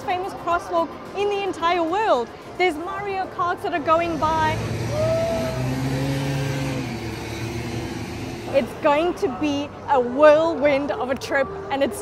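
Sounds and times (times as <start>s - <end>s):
vehicle engine passing: 3.7s - 9.4s.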